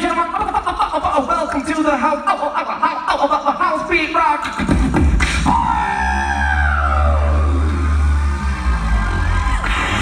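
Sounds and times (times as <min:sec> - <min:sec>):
beatboxed drum hits: 0:04.4 - 0:05.8
siren-like vocal sweep: 0:05.5 - 0:10.0.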